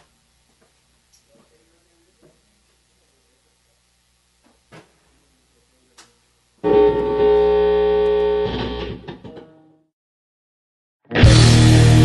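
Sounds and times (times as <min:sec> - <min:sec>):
electric guitar chord ringing: 0:06.6 - 0:09.8, 0:11.1 - 0:12.0.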